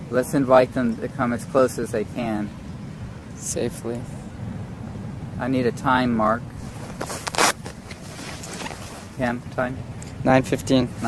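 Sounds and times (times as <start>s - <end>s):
brief rustling: 6.6s - 9.2s.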